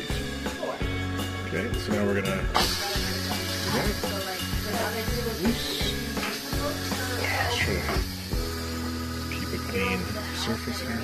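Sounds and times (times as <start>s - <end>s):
background music with singing: 0.0s - 9.5s
pressure valve venting steam: 2.5s - 11.0s.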